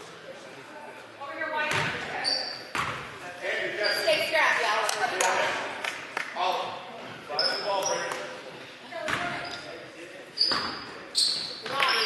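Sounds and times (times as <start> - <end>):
sneakers squeaking: 1.7 - 3.1, 3.7 - 4.4, 7.0 - 8.4, 9.0 - 12.0.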